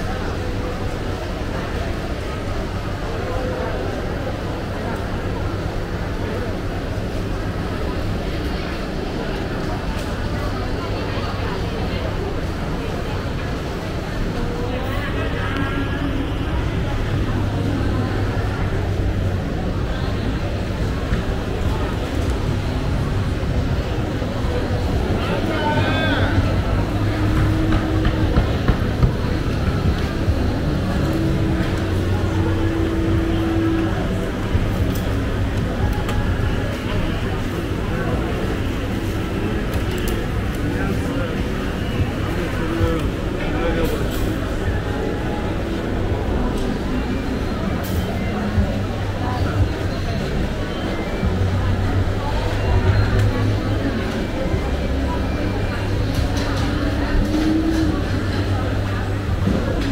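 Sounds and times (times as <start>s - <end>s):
crowd talking: 0.0s - 59.9s
low market rumble: 0.0s - 59.9s.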